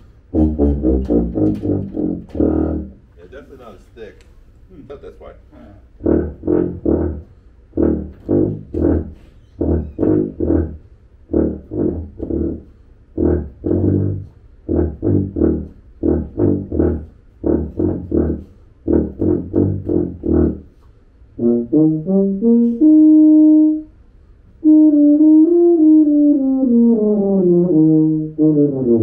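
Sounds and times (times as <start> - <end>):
tuba playing short low notes: 0.0 - 3.8, 5.4 - 29.0.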